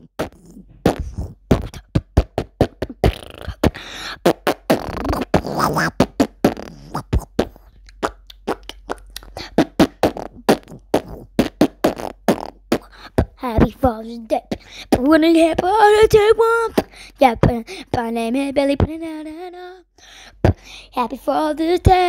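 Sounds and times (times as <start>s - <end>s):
beatboxing mouth pops and clicks: 0.0s - 17.6s.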